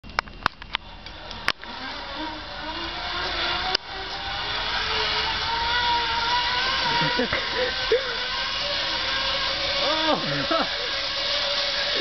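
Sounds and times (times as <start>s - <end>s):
zip-line trolley whirring on cable: 0.2s - 12.0s.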